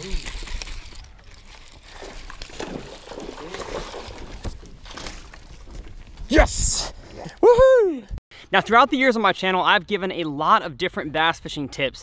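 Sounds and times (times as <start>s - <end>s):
fishing reel ratchet clicking: 0.0s - 2.1s.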